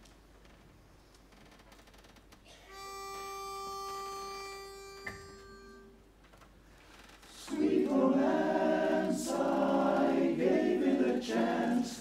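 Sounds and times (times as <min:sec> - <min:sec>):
pitch pipe note: 0:02.6 - 0:06.0.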